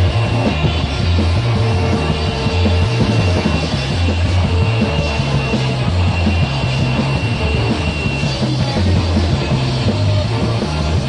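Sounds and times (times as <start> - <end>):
bass line: 0.0 - 11.0
live rock band playing: 0.0 - 11.0.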